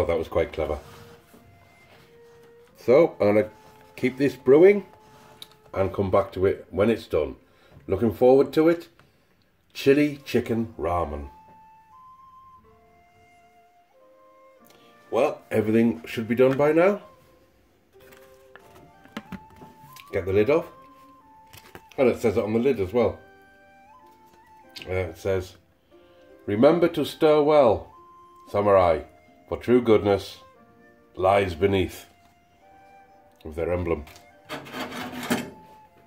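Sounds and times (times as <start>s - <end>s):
soft background music: 0.0s - 36.0s
paper pot rubbing and scraping: 34.4s - 35.5s.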